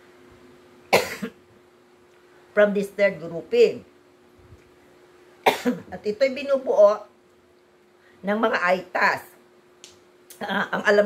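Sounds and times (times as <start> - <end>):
woman coughing: 0.9 - 1.4, 5.4 - 6.0.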